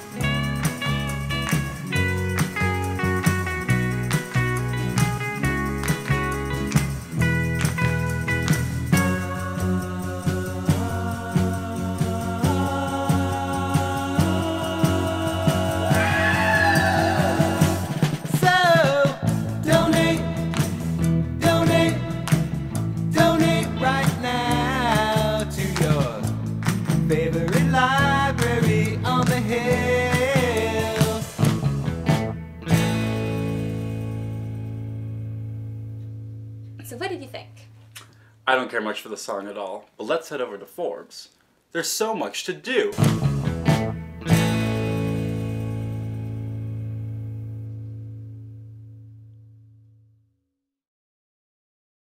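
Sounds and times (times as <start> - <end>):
rock band playing: 0.0 - 9.8, 14.8 - 35.4, 43.0 - 47.4
guitar chord strummed over bass: 0.0 - 11.8, 19.2 - 37.0, 43.0 - 49.9
person singing: 9.2 - 20.6, 21.3 - 26.4, 27.0 - 31.5.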